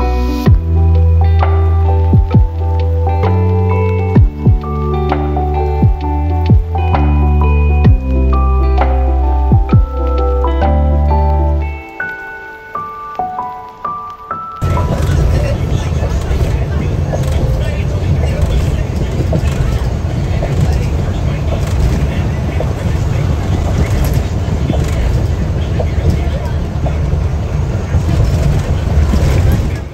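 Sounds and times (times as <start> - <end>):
passengers talking: 0.0 - 29.9
bus engine and road rumble: 14.6 - 29.9.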